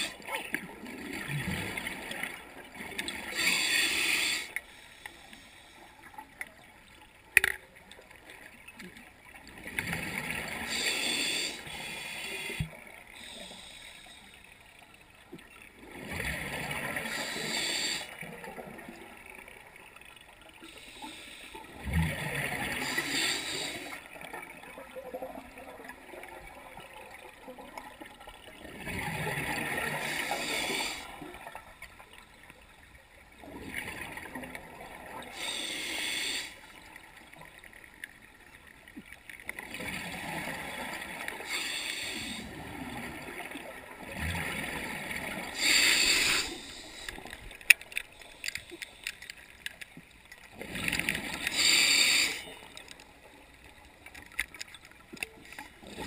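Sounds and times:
diver breathing through regulator: 3.2s - 6.0s, 10.6s - 14.4s, 29.9s - 31.1s, 35.3s - 36.6s, 45.4s - 47.4s, 51.3s - 52.6s
bubbles: 24.1s - 31.7s.

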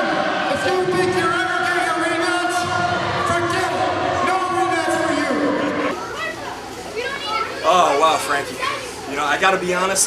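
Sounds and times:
children calling and shouting: 3.0s - 9.7s.

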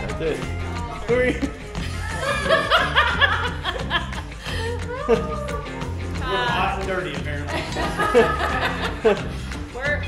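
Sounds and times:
background music: 0.0s - 10.0s
woman laughing: 1.8s - 5.5s, 7.6s - 9.2s.

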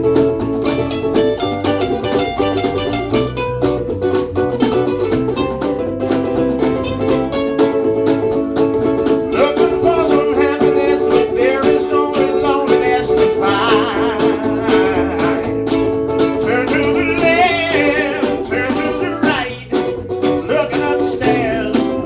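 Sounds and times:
electric bass line: 0.0s - 22.0s
ukuleles strumming: 0.0s - 22.0s.

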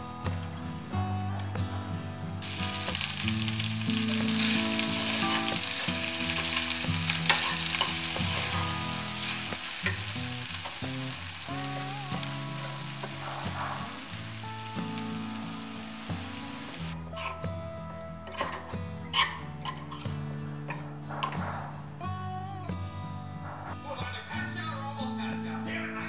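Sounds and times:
rice sizzling in a frying pan: 2.4s - 17.0s.

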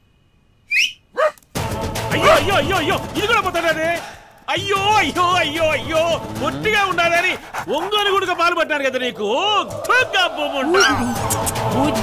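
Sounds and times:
rising whistle-like squeals: 0.7s - 1.1s
loud music: 1.6s - 4.0s, 4.6s - 7.4s, 9.6s - 12.0s.

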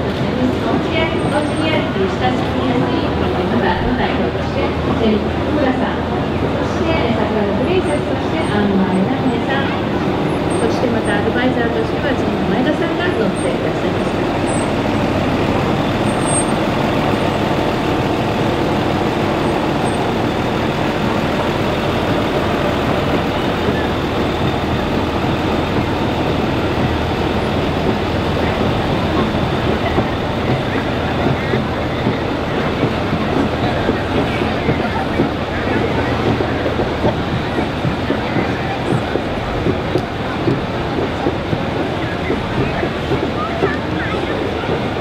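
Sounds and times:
murmur of crowd voices: 0.0s - 45.0s
trolley bus engine passing: 0.0s - 45.0s.

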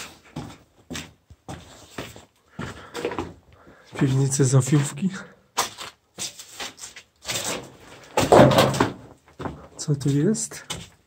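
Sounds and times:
footsteps on concrete stairs: 0.0s - 7.0s, 7.9s - 11.0s
footsteps on gritty concrete: 0.0s - 8.4s.

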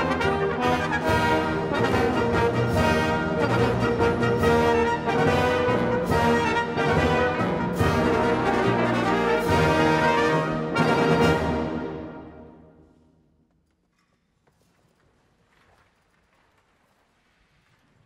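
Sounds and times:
wind band playing loud chords: 0.0s - 12.7s.

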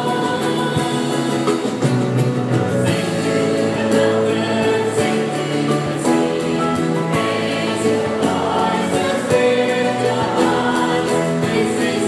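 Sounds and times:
women singing in harmony: 0.0s - 1.9s, 2.9s - 12.0s
band with piano and drums: 0.0s - 12.0s.

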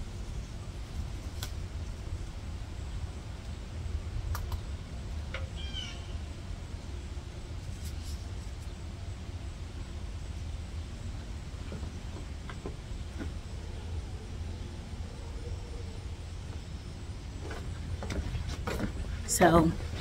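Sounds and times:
low steady rumble: 0.0s - 20.0s
high chirping animal call: 5.6s - 6.2s.

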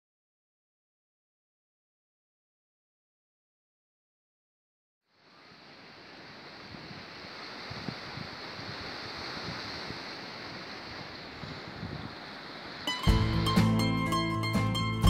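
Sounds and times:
wind: 5.0s - 15.0s
sea waves: 5.1s - 15.0s.

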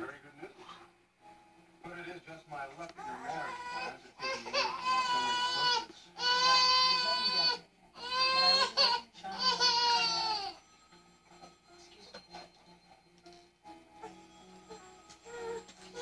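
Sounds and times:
baby crying: 3.0s - 10.6s, 14.0s - 16.0s.

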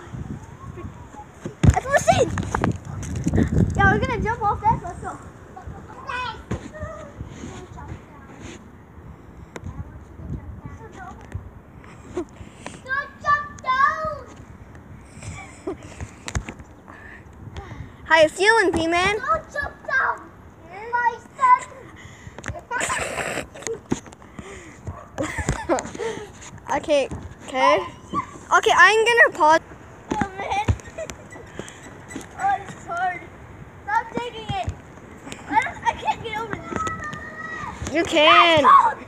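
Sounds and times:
kids laughing: 0.4s - 2.8s, 3.4s - 6.5s, 15.1s - 16.3s, 20.8s - 26.5s, 30.2s - 33.3s, 33.9s - 39.0s
child calling out: 36.3s - 39.0s.

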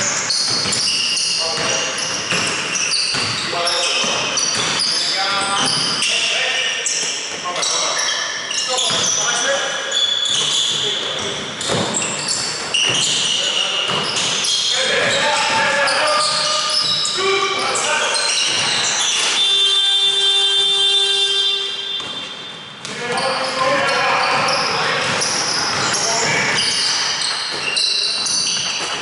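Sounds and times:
ball bouncing on wooden court: 0.1s - 6.1s, 8.8s - 9.2s, 10.2s - 17.2s, 18.2s - 19.4s, 21.9s - 29.0s
players' voices echoing: 0.7s - 29.0s
steady buzzer tone: 19.2s - 22.4s.

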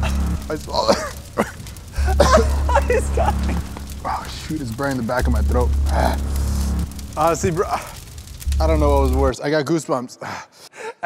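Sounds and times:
man laughing: 0.0s - 3.6s
low background music: 0.0s - 9.3s
man coughing and gagging: 0.8s - 3.0s.

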